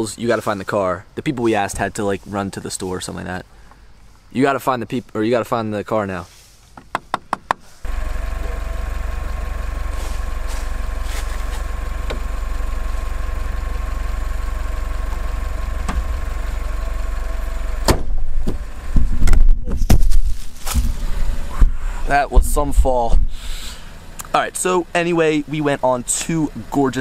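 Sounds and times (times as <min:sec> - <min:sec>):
car engine idling: 0:07.8 - 0:19.4, 0:20.6 - 0:27.0
low rumbling and thumping: 0:14.8 - 0:16.7, 0:17.8 - 0:23.4.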